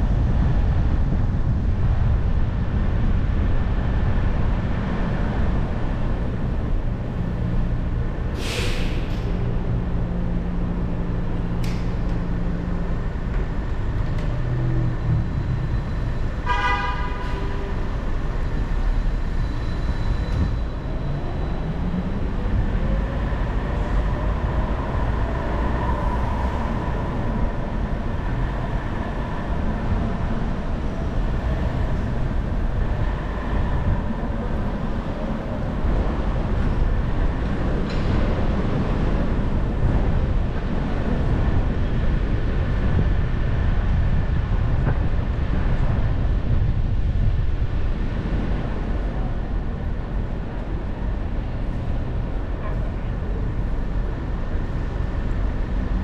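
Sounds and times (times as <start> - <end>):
short car horn toot: 16.5 - 17.3.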